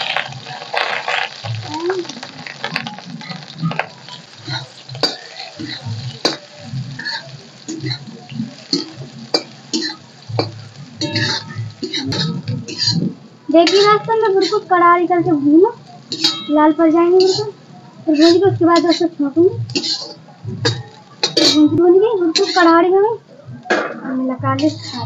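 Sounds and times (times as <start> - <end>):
food frying in hot oil: 0.0 - 25.0.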